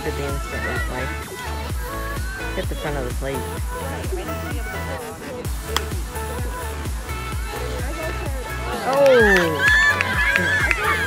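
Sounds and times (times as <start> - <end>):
electronic dance music: 0.0 - 11.0
sharp crack: 5.7 - 6.0.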